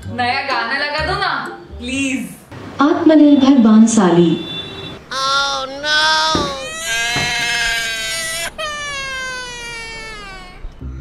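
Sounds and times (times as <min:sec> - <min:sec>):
woman wailing: 0:05.1 - 0:10.7.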